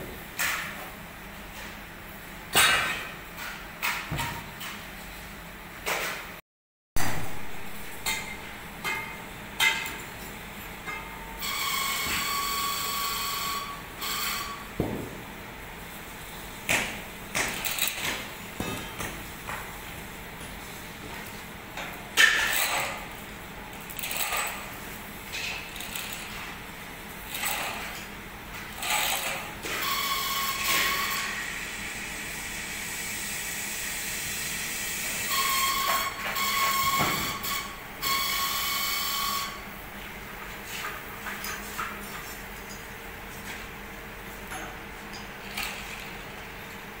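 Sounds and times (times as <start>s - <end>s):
electric chain hoist whining: 23.9s - 24.7s, 25.7s - 26.4s, 27.3s - 27.8s, 28.7s - 31.4s.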